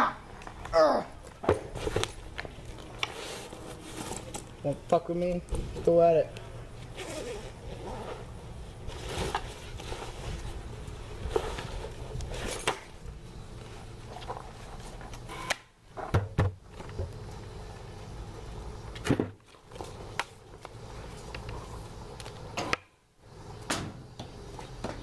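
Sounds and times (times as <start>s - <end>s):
close rustling and handling noise: 1.3s - 16.1s.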